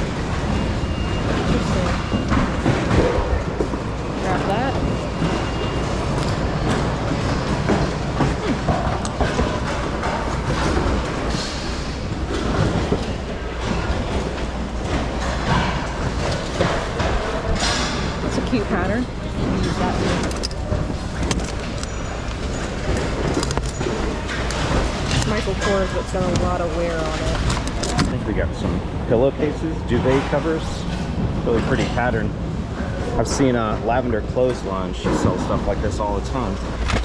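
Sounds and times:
bags rustling and knocking: 0:00.0 - 0:28.7
busy store noise: 0:00.0 - 0:37.0
people talking: 0:04.2 - 0:04.9, 0:18.2 - 0:20.5, 0:25.1 - 0:32.4, 0:33.1 - 0:36.6.

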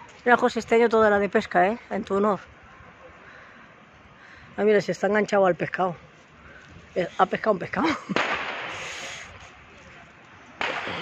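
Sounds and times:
firecracker bangs: 0:08.1 - 0:09.2, 0:10.6 - 0:11.0.

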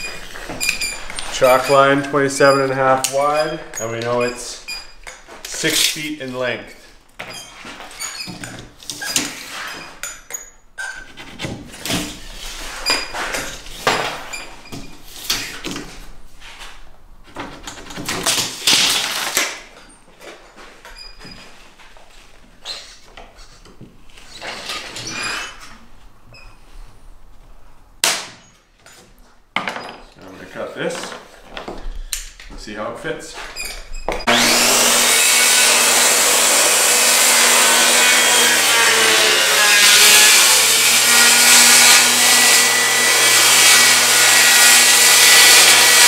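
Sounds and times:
tape measure scraping on plywood: 0:00.1 - 0:04.3, 0:08.9 - 0:10.0.

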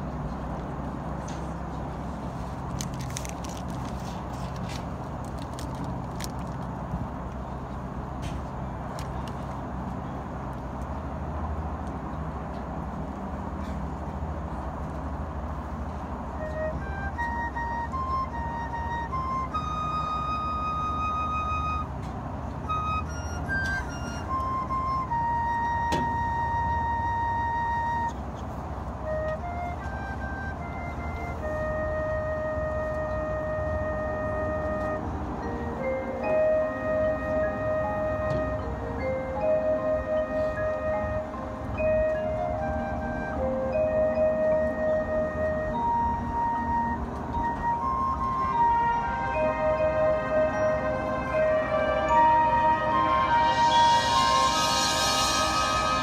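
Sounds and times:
solo flute melody: 0:14.5 - 0:56.0.

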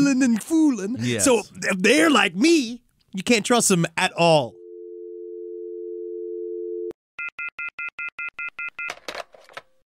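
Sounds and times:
landline dial tone: 0:04.5 - 0:09.0.

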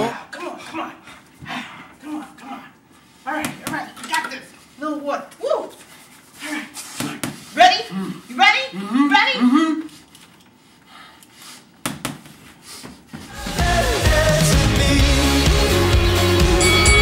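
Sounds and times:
indistinct voices talking: 0:16.6 - 0:17.0.

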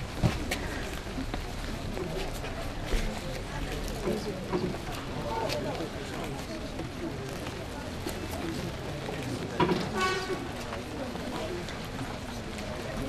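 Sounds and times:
murmur of voices outdoors: 0:00.0 - 0:13.0.

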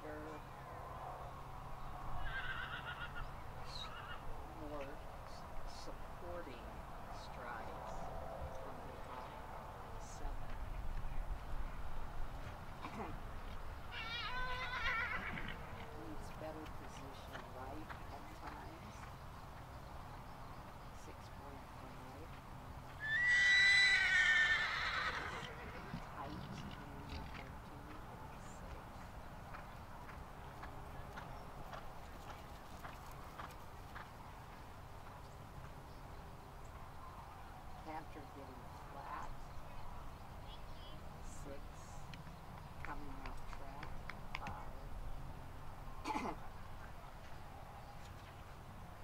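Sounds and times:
horse whinnying: 0:02.2 - 0:03.2, 0:14.0 - 0:15.6, 0:23.0 - 0:25.9.

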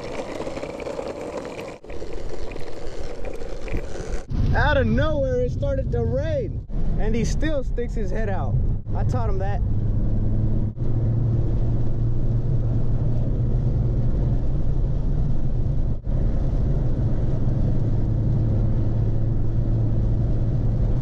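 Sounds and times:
engine and road hum: 0:00.0 - 0:21.0.

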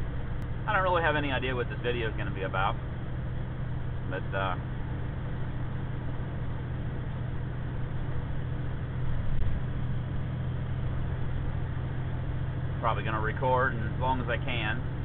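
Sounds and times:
truck diesel engine drone: 0:00.0 - 0:15.0.

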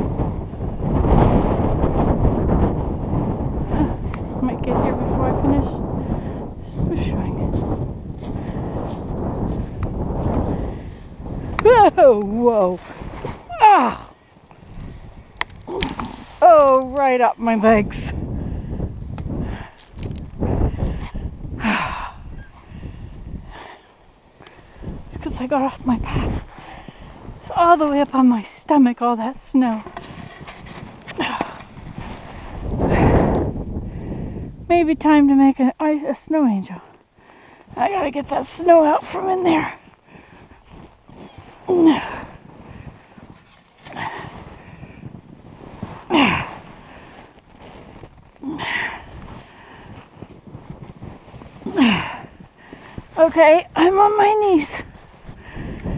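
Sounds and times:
microphone handling noise: 0:00.0 - 0:21.6, 0:29.5 - 0:34.7, 0:39.2 - 0:55.9
low rumbling wind: 0:00.0 - 0:55.9
faint rustles in snow: 0:02.5 - 0:21.3, 0:22.4 - 0:34.4, 0:36.1 - 0:55.9.

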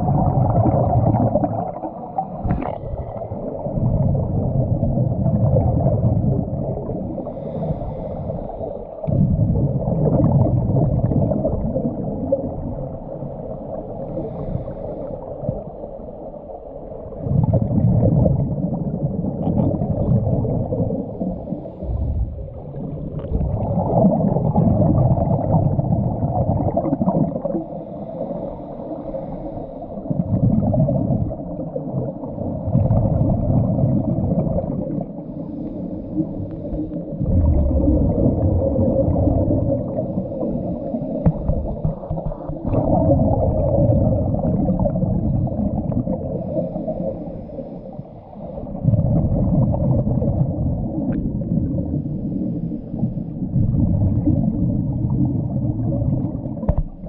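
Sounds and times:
diver exhaling bubbles underwater: 0:00.0 - 0:07.5, 0:09.0 - 0:13.2, 0:17.1 - 0:27.8, 0:30.1 - 0:35.3, 0:36.1 - 0:46.8, 0:48.6 - 0:52.0, 0:53.4 - 0:57.0
diver inhaling through regulator: 0:07.0 - 0:09.0, 0:13.6 - 0:15.5, 0:21.0 - 0:23.4, 0:27.6 - 0:30.2, 0:35.1 - 0:37.3, 0:39.8 - 0:42.9, 0:46.2 - 0:48.8.

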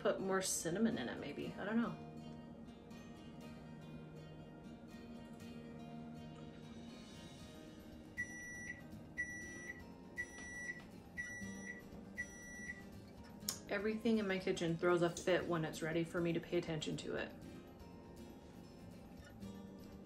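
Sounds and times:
faint background music: 0:00.0 - 0:20.0
appliance timer beeping: 0:08.2 - 0:12.8.

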